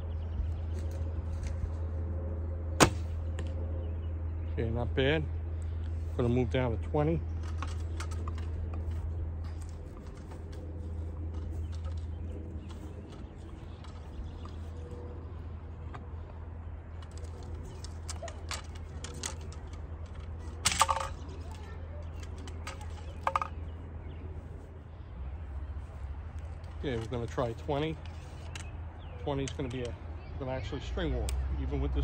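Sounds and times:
wind rumble on microphone: 0.0s - 5.8s.

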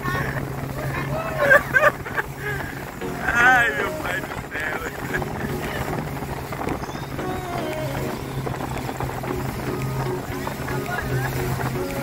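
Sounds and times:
faint music: 0.0s - 12.0s
speedboat engine drone: 0.0s - 12.0s
voices: 0.0s - 12.0s
wind and water rushing: 0.0s - 12.0s.

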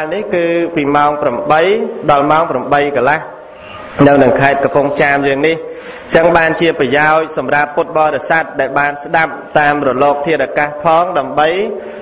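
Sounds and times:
person chanting sermon: 0.0s - 12.0s.

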